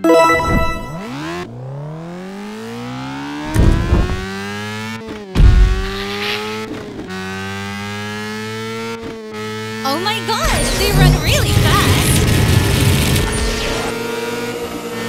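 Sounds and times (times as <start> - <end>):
cartoon race car engine accelerating: 5.9 - 15.0.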